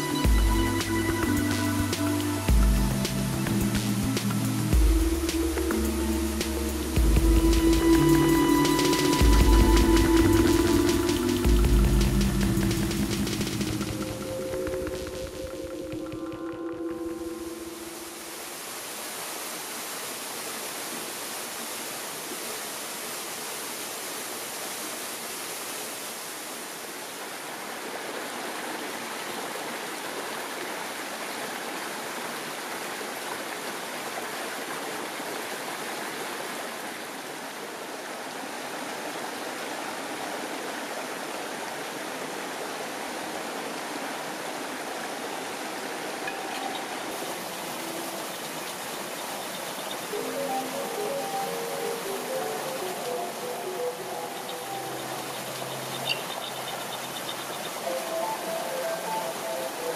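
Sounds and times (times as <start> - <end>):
stream rushing over rocks: 0.0 - 59.9.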